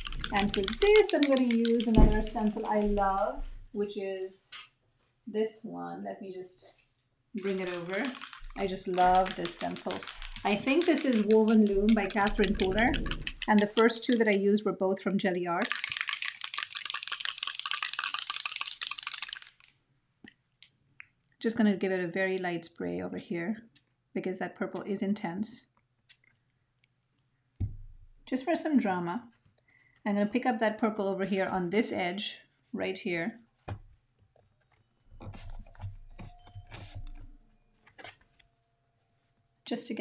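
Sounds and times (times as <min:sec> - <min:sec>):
spray bottle shaken rattling: 0:00.0 - 0:03.4, 0:07.4 - 0:14.4, 0:15.6 - 0:19.8.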